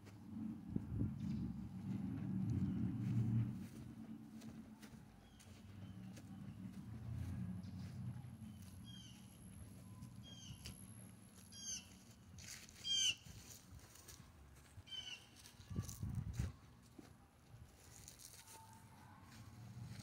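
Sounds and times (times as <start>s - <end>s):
low rumble: 0.0s - 11.4s
bird chirping: 7.8s - 10.8s.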